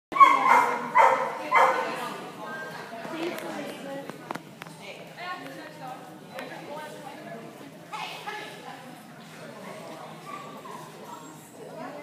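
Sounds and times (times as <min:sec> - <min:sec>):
dog barking in a hall: 0:00.1 - 0:02.1, 0:09.6 - 0:11.5.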